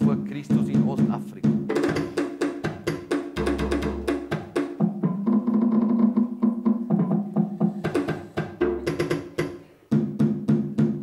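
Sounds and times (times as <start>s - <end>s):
electronic hand drum patter: 0.0s - 11.0s.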